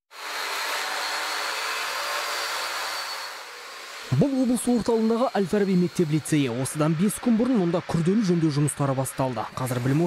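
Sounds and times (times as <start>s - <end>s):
power tool whirring with high whine: 0.1s - 10.0s.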